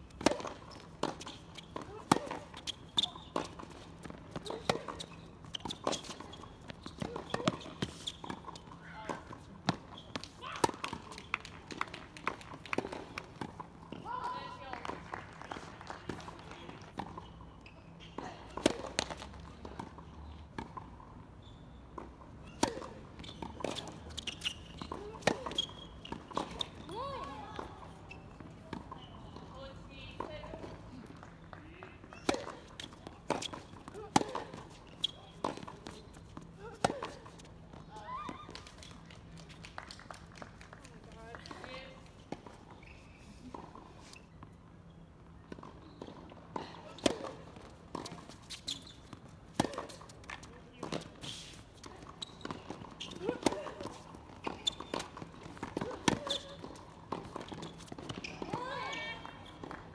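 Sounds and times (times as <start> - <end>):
rackets striking tennis ball: 0.1 - 17.2, 21.9 - 39.3, 45.5 - 59.9
tennis ball bouncing: 0.1 - 17.3, 18.1 - 21.1, 21.9 - 39.0, 45.2 - 59.9.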